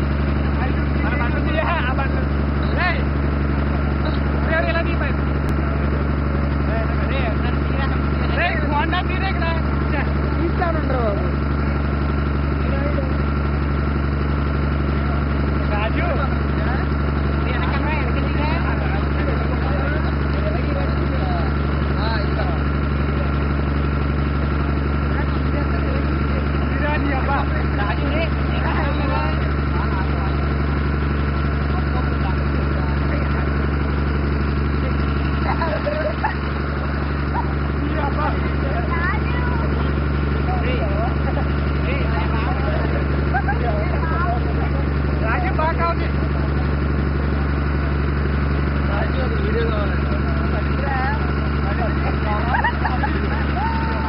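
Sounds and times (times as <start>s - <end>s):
boat engine droning: 0.0s - 54.0s
voices chattering: 0.0s - 54.0s.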